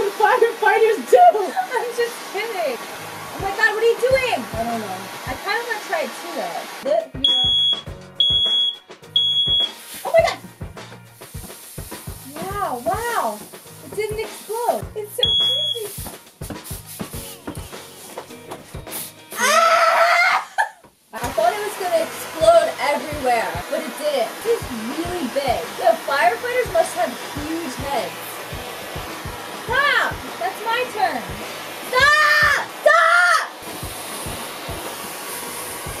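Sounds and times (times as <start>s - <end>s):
laughter: 1.4s - 1.8s, 20.3s - 20.8s
smoke alarm beeping: 7.2s - 9.8s, 15.2s - 16.0s
high voice squeal: 19.4s - 20.6s
excited voices: 19.4s - 20.7s, 32.0s - 33.5s.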